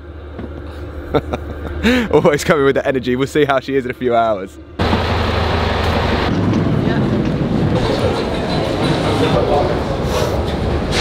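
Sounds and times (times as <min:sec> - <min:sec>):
bus engine humming: 0:00.0 - 0:11.0.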